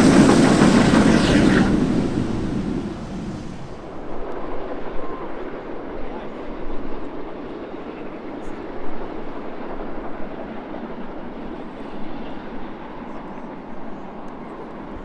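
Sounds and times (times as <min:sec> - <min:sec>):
steam locomotive heavy exhaust: 0:00.0 - 0:04.2.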